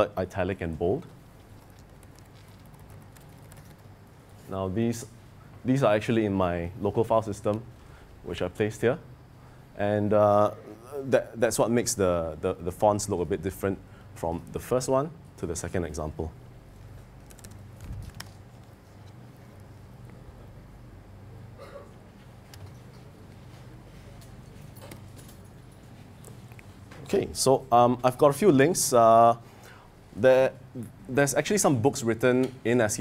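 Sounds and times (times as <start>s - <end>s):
low steady hum: 0.0s - 33.0s
laptop keystrokes: 1.6s - 3.8s, 17.2s - 18.4s.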